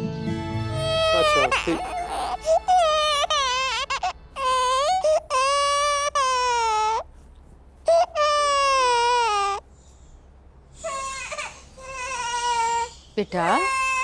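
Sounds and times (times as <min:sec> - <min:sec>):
infant crying: 0:00.7 - 0:07.1, 0:07.9 - 0:09.6, 0:10.8 - 0:14.0.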